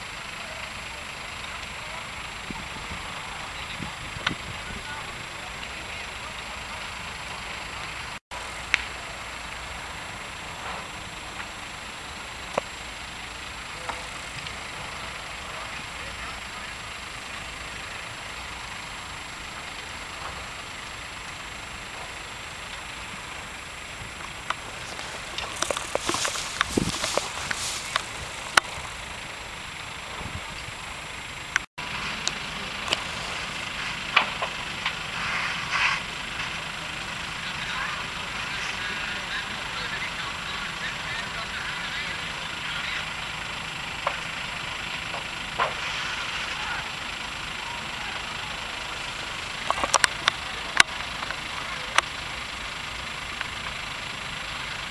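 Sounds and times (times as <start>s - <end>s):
faint voices: 0.0s - 12.0s, 12.8s - 20.5s, 21.8s - 28.8s, 32.0s - 52.4s
distant fire rushing: 0.0s - 54.9s
sharp clicks and crackles: 0.1s - 41.0s, 41.9s - 54.8s.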